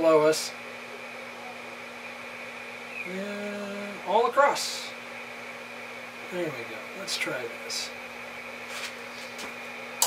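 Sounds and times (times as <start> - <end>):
radio equipment hiss and hum: 0.0 - 10.0.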